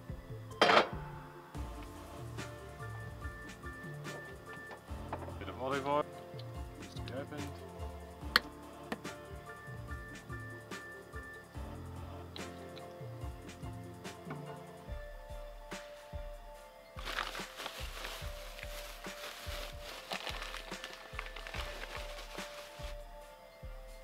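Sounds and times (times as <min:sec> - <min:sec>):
music with steady beat: 0:00.0 - 0:24.0
paper bag rustling: 0:17.0 - 0:23.0.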